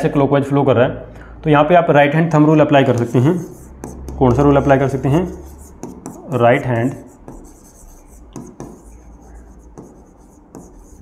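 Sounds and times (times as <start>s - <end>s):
stylus scratching on glass screen: 2.8s - 11.0s
stylus tapping on screen: 2.9s - 11.0s.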